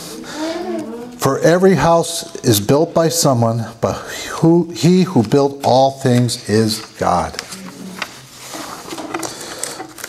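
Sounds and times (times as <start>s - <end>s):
paper pages rustling: 5.1s - 10.0s.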